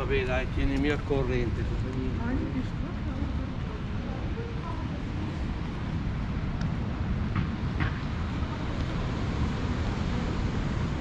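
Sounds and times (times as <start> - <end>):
wind buffeting microphone: 0.0 - 11.0
sea surf: 1.4 - 11.0.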